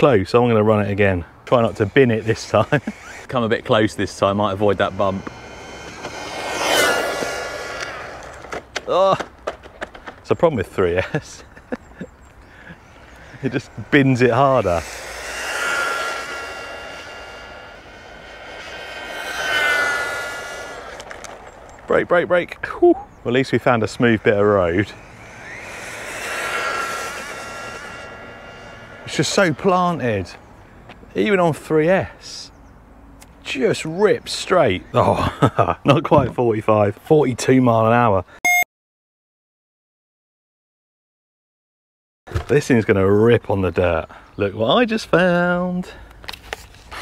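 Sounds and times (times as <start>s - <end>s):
rc car motor whine: 1.7s - 10.0s, 11.0s - 31.1s
tyre hiss: 12.4s - 21.9s.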